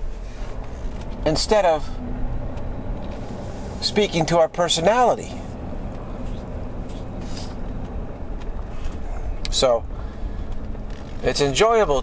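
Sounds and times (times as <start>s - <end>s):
traffic rumble: 0.0s - 12.0s
short soft hiss: 6.2s - 7.7s.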